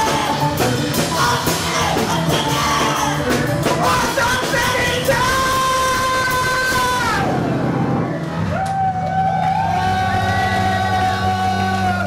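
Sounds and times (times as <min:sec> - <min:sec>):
steady low drone: 0:07.1 - 0:12.0.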